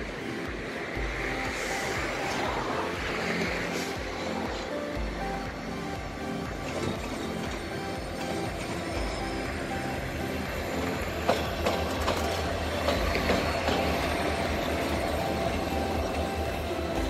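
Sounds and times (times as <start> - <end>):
diesel locomotive engine running: 0.0 - 17.0
wheel clicks on track: 6.4 - 17.0.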